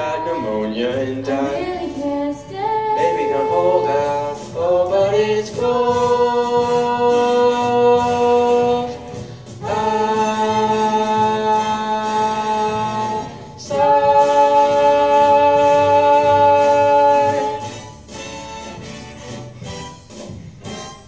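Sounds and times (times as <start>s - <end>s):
girl and boy singing a duet: 0.0s - 17.7s.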